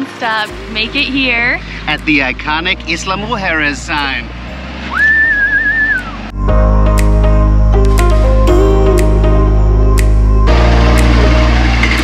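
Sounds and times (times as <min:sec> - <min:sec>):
whistled note sliding up: 0:04.8 - 0:06.4
loud music with steady bass: 0:06.4 - 0:12.0.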